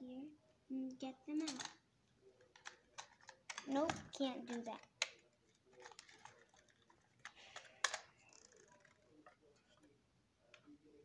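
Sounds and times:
plastic packaging clicks and crinkles: 2.4s - 9.9s.

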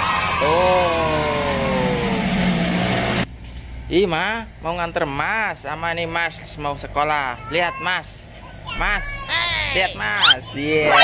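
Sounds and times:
low hum: 0.0s - 6.4s.

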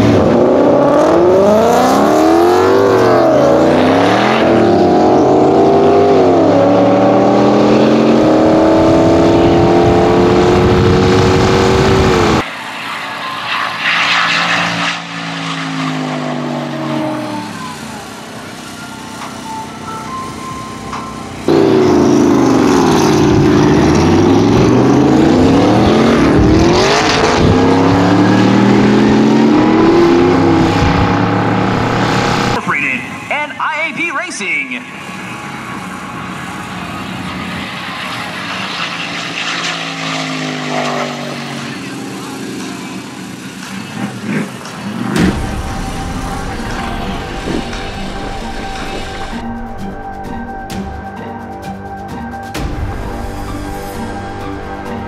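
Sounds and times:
race car engines accelerating hard: 0.0s - 18.6s, 21.4s - 32.8s, 34.9s - 50.8s
distant engine noise: 0.0s - 55.0s.

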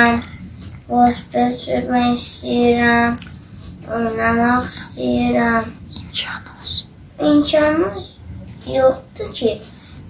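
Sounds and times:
boy talking: 0.0s - 0.3s, 0.9s - 9.8s
boy breathing softly: 9.7s - 10.0s.

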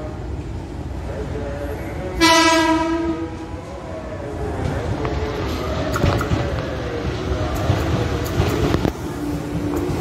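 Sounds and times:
low rumble of approaching train: 0.0s - 10.0s
electric train horn: 2.2s - 3.3s.

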